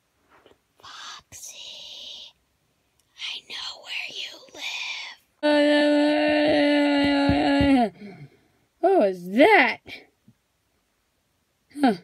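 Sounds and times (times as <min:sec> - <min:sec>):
person whispering: 0:00.8 - 0:02.4, 0:03.2 - 0:05.2.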